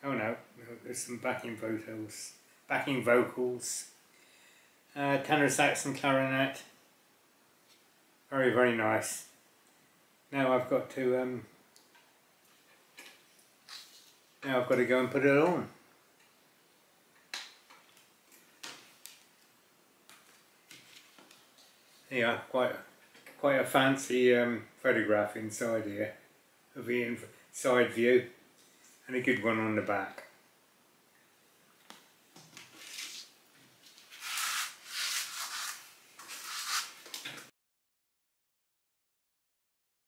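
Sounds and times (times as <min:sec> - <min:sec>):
paper booklet rustling: 0:20.2 - 0:22.1, 0:32.6 - 0:37.4.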